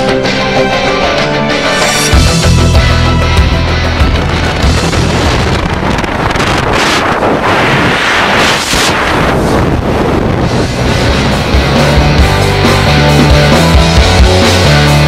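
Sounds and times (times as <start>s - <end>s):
rock music: 0.0s - 7.4s, 10.4s - 15.0s
loud rushing noise: 1.4s - 15.0s.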